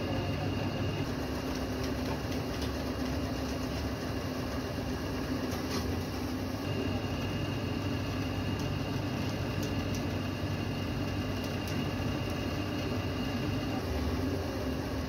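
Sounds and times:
hydraulic press pump hum: 0.0 - 15.0
faint high whine: 6.6 - 9.0.

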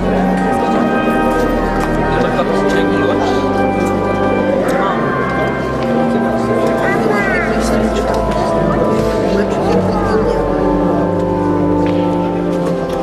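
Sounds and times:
held keyboard chords: 0.0 - 13.0
people's voices: 0.0 - 13.0.

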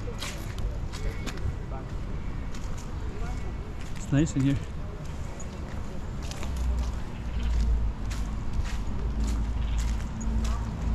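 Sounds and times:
faint voices: 0.0 - 10.9
soft footsteps: 0.0 - 10.9.

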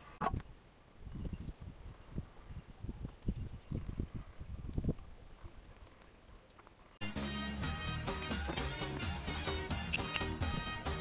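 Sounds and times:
wind buffeting microphone: 0.2 - 5.9.

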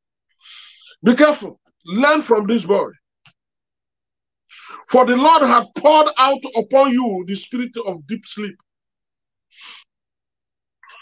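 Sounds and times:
man breathing: 0.3 - 1.0, 9.5 - 10.0.

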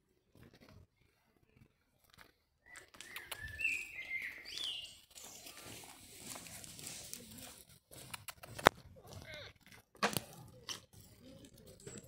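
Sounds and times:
small bird chirping: 2.6 - 5.8.

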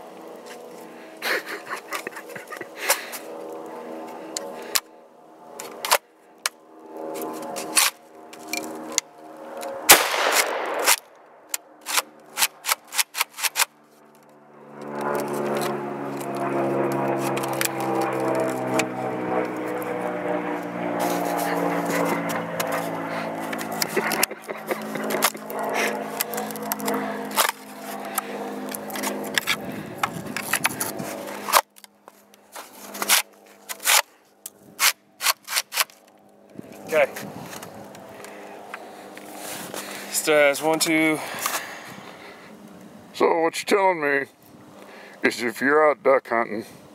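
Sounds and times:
buzzing hum: 0.0 - 40.6.

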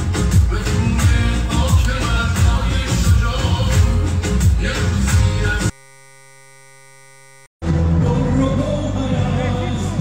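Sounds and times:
steady hum: 5.7 - 7.5
loud crowd with voices: 7.6 - 10.0.

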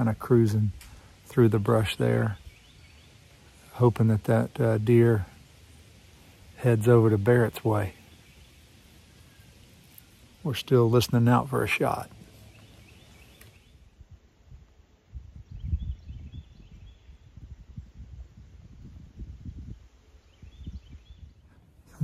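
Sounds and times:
wind gusting on microphone: 11.8 - 22.0
faint high bird chirps: 15.4 - 17.4, 20.0 - 22.0.

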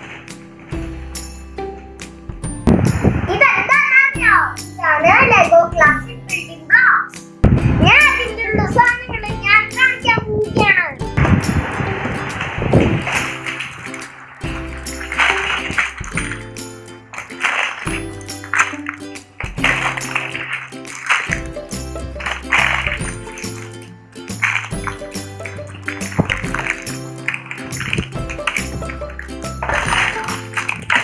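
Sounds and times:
music with steady beat: 0.0 - 3.1, 14.4 - 31.0
child's voice: 3.3 - 7.2, 7.8 - 11.0.

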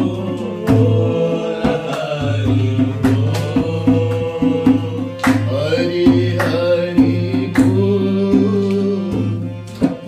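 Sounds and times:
voices singing a chant: 0.0 - 9.6
hand drum beating: 0.0 - 10.0
harmonium chords: 0.0 - 10.0.

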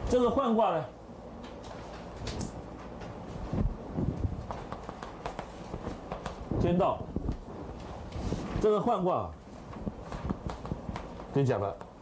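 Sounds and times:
chalk tapping on blackboard: 4.5 - 6.4, 10.0 - 12.0.

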